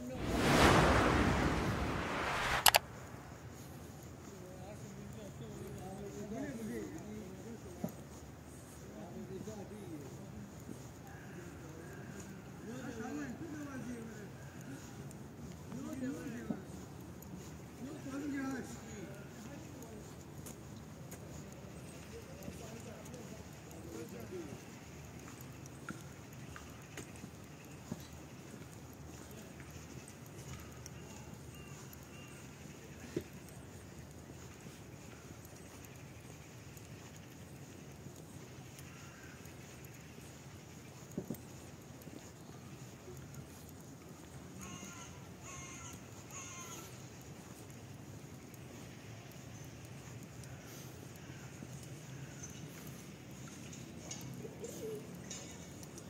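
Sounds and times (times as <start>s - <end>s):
low outdoor background hum: 0.0s - 56.0s
footsteps on brick paving: 14.4s - 44.6s.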